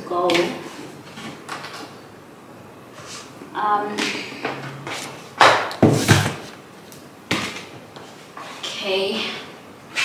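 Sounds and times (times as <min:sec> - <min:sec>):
objects thumping and clacking: 0:05.4 - 0:06.5.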